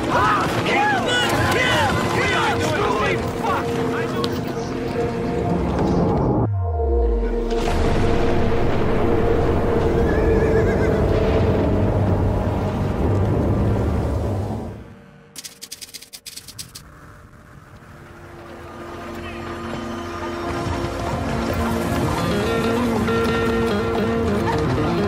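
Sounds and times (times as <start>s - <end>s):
film score music: 0.0s - 25.0s
rapid clicks: 15.4s - 16.9s.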